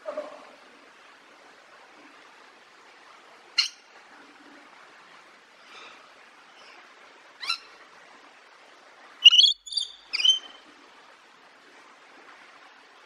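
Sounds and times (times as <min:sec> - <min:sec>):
parrot calling: 0:07.4 - 0:07.6, 0:09.2 - 0:10.6.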